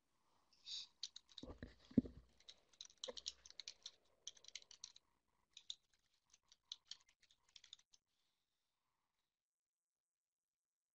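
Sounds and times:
computer keyboard typing: 1.0s - 8.0s.

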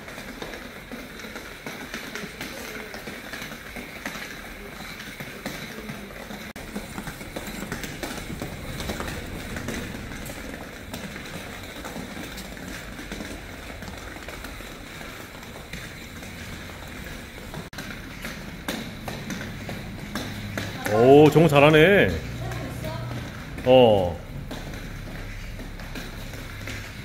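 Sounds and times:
plastic ball tapping on tile floor: 0.0s - 23.6s, 24.3s - 27.0s
light hopping footsteps: 0.0s - 27.0s
steady background noise: 0.0s - 27.0s.

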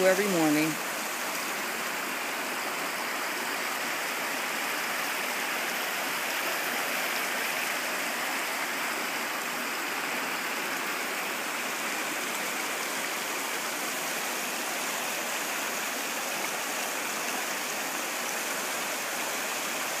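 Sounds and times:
stream rushing over stones: 0.0s - 20.0s.

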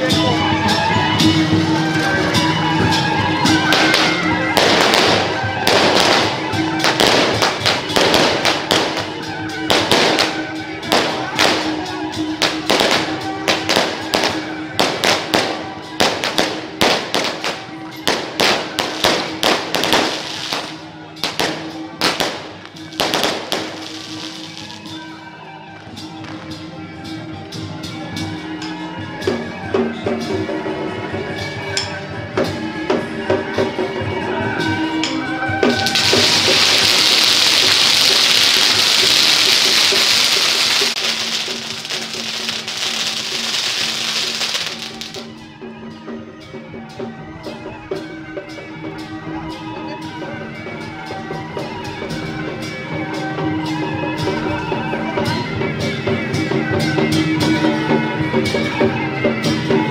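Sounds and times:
temple procession music: 0.0s - 59.9s
firecrackers cracking: 3.7s - 24.8s, 35.7s - 45.3s
loud dense crackling hiss: 35.9s - 45.1s.

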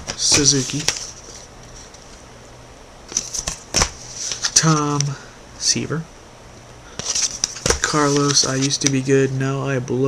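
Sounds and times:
trading cards rustling: 0.1s - 2.2s, 3.1s - 5.1s, 7.0s - 9.3s.

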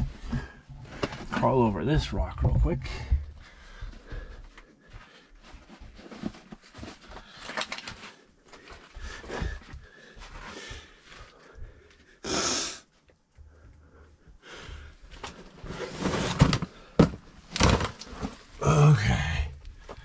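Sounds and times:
heavy breathing: 2.8s - 5.6s, 8.4s - 15.2s.

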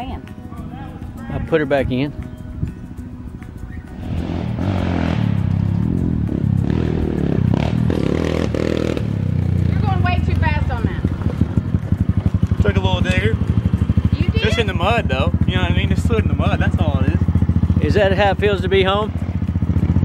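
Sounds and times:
dirt bike engine revving: 3.7s - 20.0s.

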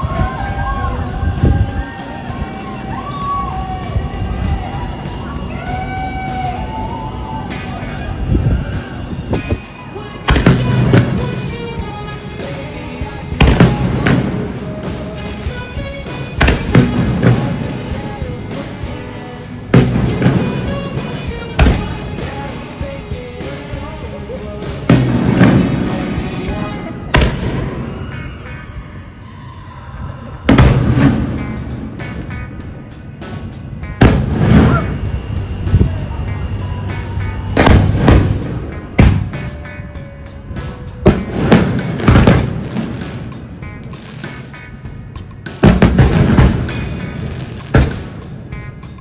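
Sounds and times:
music: 0.0s - 49.0s
fireworks bangs: 10.3s - 12.0s, 13.4s - 15.2s, 16.2s - 18.2s, 19.8s - 22.4s, 24.9s - 28.2s, 30.5s - 32.5s, 33.3s - 35.9s, 37.4s - 39.7s, 40.7s - 44.6s, 45.6s - 48.5s.

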